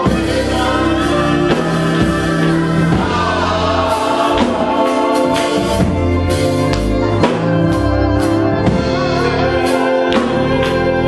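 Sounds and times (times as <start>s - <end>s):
gospel choir singing: 0.0s - 11.0s
instrumental accompaniment: 0.0s - 11.0s
sharp percussive beat: 0.0s - 11.0s.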